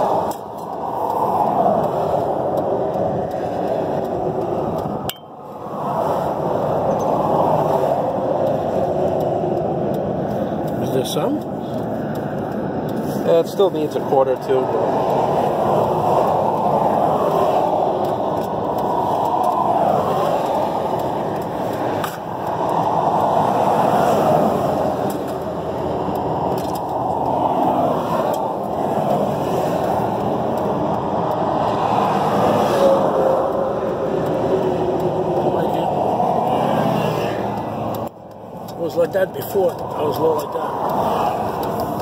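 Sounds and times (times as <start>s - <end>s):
rushing motor vehicle noise: 0.0s - 42.0s.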